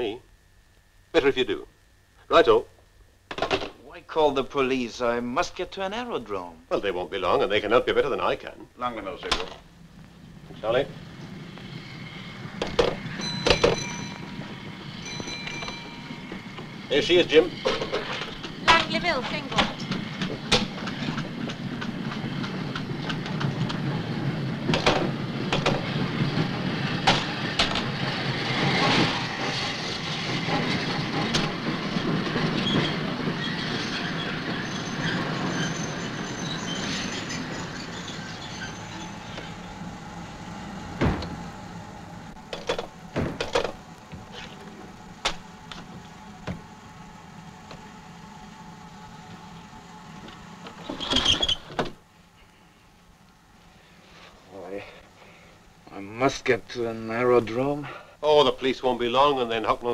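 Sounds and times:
train rumbling and clanking: 0:04.3 - 0:52.1
sharp knocks: 0:41.0 - 0:41.4.

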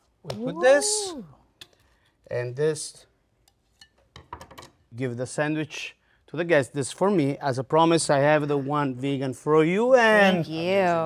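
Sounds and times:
plates tapping and clinking: 0:03.8 - 0:04.8.

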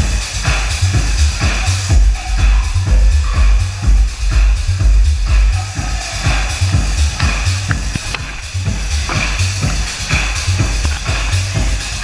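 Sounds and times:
loud electronic dance music: 0:00.0 - 0:12.0.

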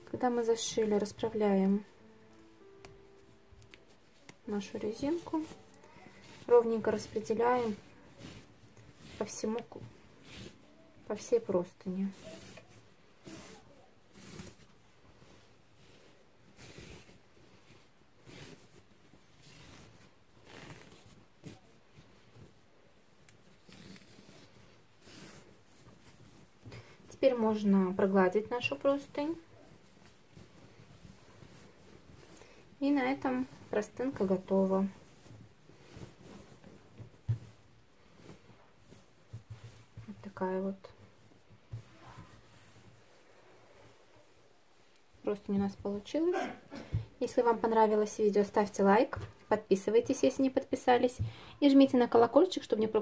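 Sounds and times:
fabric sheet rustling: 0:00.0 - 0:53.0.

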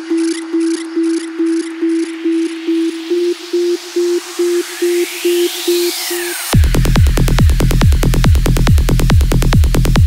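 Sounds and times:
pulsing synth note: 0:00.0 - 0:10.0
rising noise sweep: 0:00.9 - 0:08.5.

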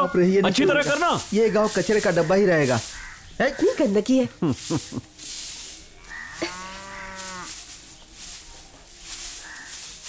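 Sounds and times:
broom swishing over dusty ground: 0:00.0 - 0:10.0
cow mooing: 0:06.0 - 0:07.5.

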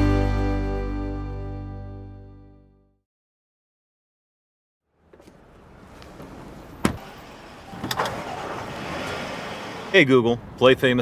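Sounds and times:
car running: 0:04.9 - 0:10.6.

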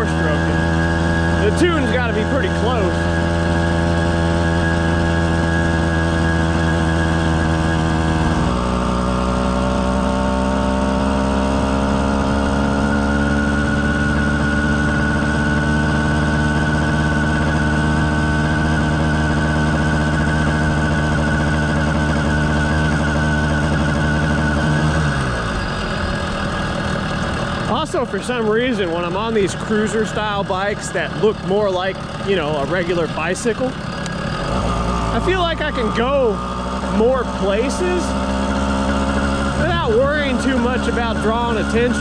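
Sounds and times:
two-stroke bicycle engine buzzing: 0:00.0 - 0:42.0.

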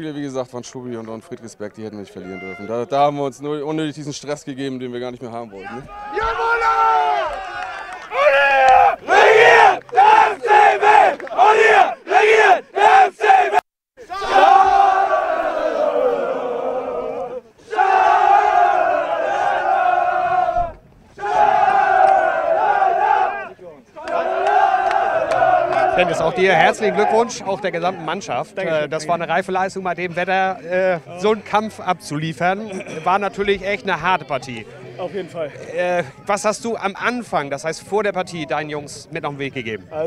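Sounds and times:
rhythmic shouts: 0:05.8 - 0:27.5
men chanting: 0:08.1 - 0:28.2.

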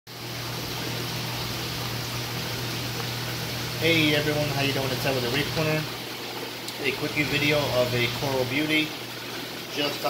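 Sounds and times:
water rushing through plumbing: 0:00.1 - 0:10.0.

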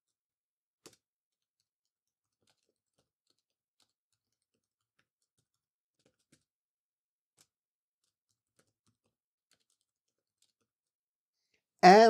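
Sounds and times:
faint keyboard clicks: 0:01.6 - 0:06.5, 0:07.4 - 0:10.7.

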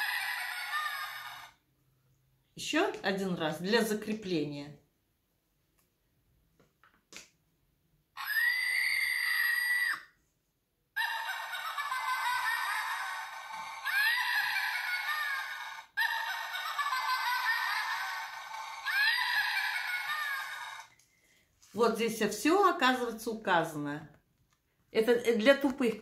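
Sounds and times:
toy doll cackling laugh: 0:00.0 - 0:01.6, 0:08.2 - 0:10.1, 0:11.0 - 0:20.9
toy doll shrill screech: 0:00.0 - 0:01.6, 0:08.2 - 0:10.2, 0:11.0 - 0:20.9.

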